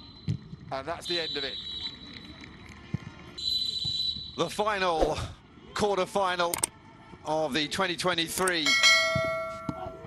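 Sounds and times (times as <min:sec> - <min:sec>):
faint stadium background noise: 0:00.0 - 0:10.0
referee's whistle blasts: 0:03.4 - 0:04.5.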